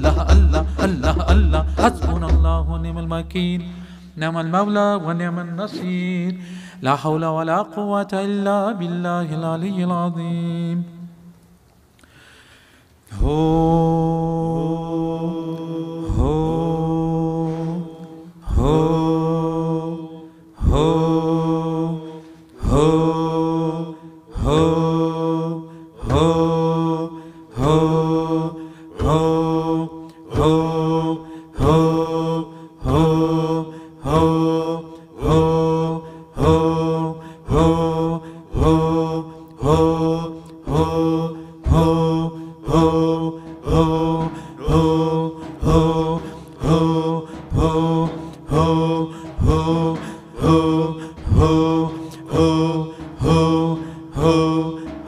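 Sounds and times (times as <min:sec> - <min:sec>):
voices chanting: 0:27.6 - 0:55.0.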